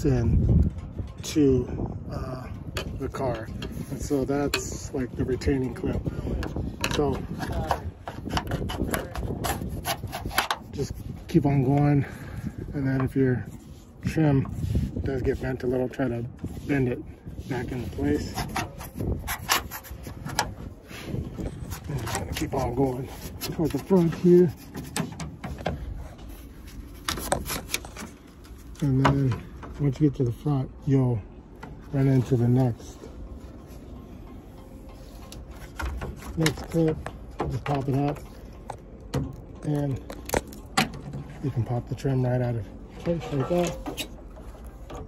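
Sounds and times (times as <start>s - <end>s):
gutter trim clicking and rubbing: 5.6s - 11.0s, 18.0s - 20.8s, 21.4s - 30.1s, 34.8s - 41.5s, 42.8s - 45.0s.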